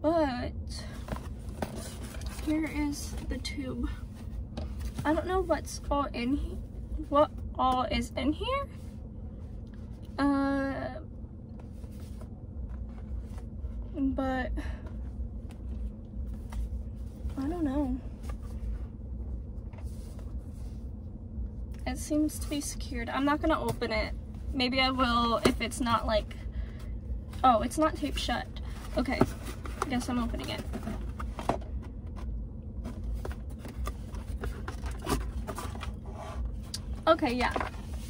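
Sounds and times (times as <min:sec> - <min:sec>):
low steady rumble: 0:00.0 - 0:38.0.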